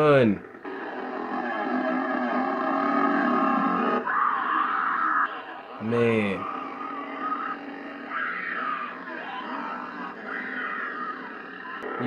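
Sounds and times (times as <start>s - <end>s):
woman screaming: 4.0s - 5.3s, 6.5s - 11.8s.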